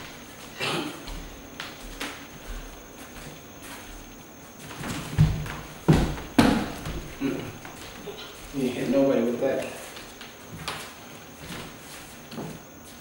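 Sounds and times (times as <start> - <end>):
feet thudding on hardwood floor: 1.0 - 8.6.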